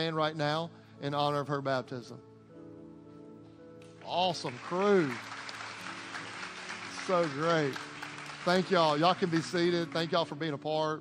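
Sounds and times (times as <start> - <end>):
soft background music: 0.0 - 11.0
many hands clapping: 3.8 - 10.4.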